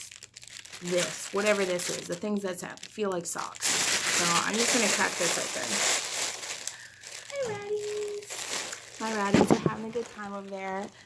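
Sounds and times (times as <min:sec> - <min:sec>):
plastic mailer bag crinkling: 0:00.0 - 0:11.0.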